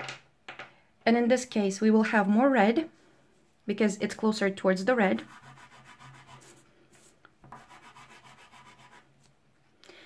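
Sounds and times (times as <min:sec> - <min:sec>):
pastel scratching on paper: 0:05.2 - 0:09.2.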